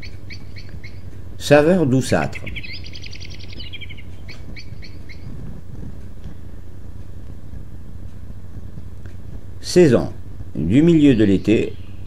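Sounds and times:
bird chirps: 0.0 - 1.2, 2.1 - 5.4, 10.6 - 12.0
songbird trill: 0.0 - 6.2, 8.8 - 12.0
steady low hum: 0.0 - 12.0.

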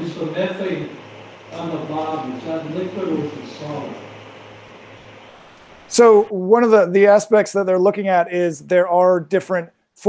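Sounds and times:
man speaking: 0.0 - 4.1, 5.9 - 10.0
low hum: 0.0 - 7.2
faint hiss: 0.0 - 10.0.

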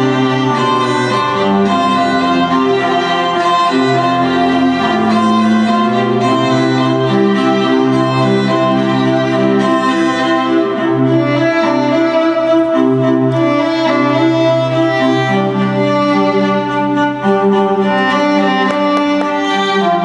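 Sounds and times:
bowed strings over loudspeakers: 0.0 - 20.0.

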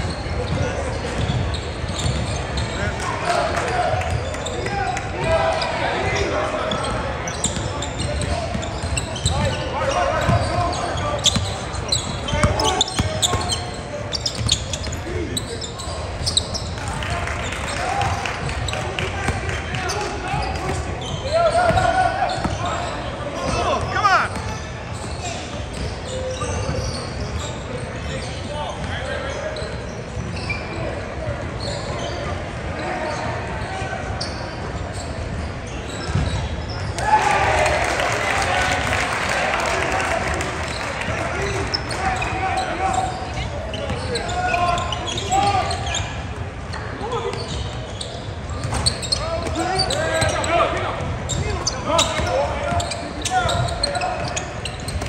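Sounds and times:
crowd voices and player calls: 0.0 - 55.0.

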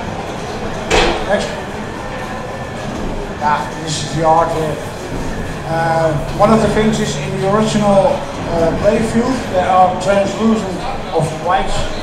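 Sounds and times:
busy hall background noise: 0.0 - 12.0.

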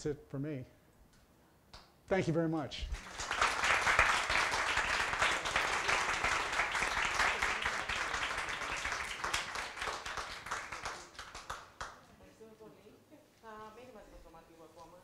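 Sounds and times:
audience applauding: 2.9 - 12.0.

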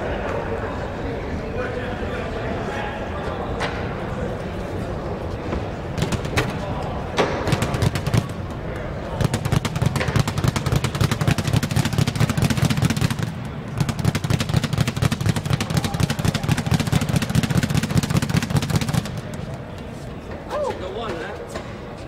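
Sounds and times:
speed bag rattling: 6.0 - 6.8, 7.4 - 19.7.

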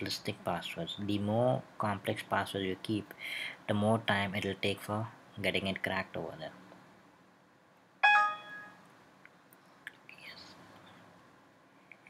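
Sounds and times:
bright alert chime: 8.0 - 8.8.

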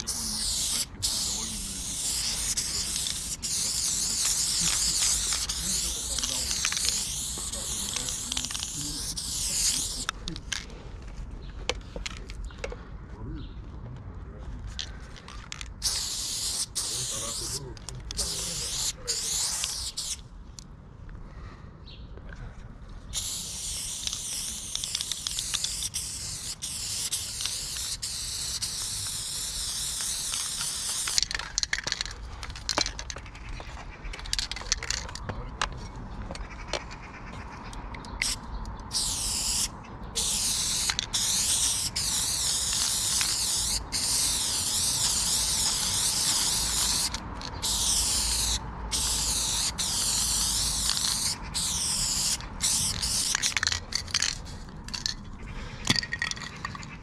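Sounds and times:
spray paint can hissing: 0.0 - 10.5, 15.4 - 20.2, 23.1 - 33.4, 34.1 - 35.3, 38.0 - 55.2.

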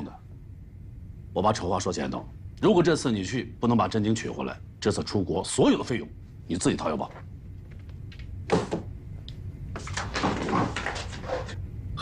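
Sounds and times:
chair and objects knocking on desk: 7.7 - 8.9, 9.8 - 11.6.

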